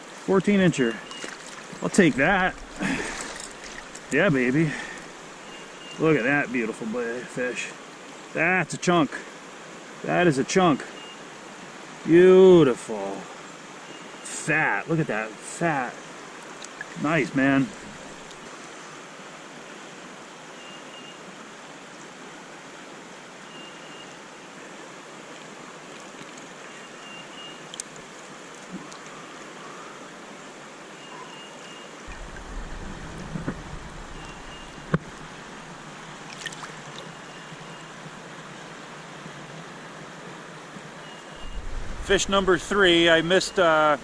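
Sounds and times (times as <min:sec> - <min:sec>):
creek water flowing: 0:00.0 - 0:44.0
low rumble: 0:32.1 - 0:35.9, 0:41.4 - 0:43.2.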